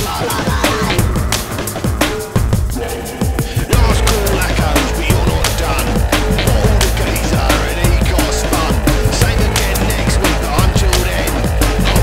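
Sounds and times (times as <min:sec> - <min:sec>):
loud rock band instrumental: 0:00.0 - 0:12.0.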